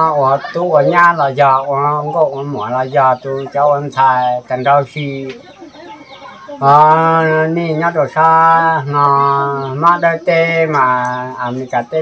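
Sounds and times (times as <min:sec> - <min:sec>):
man talking: 0:00.0 - 0:05.4, 0:06.6 - 0:12.0
faint animal calls: 0:00.0 - 0:07.3.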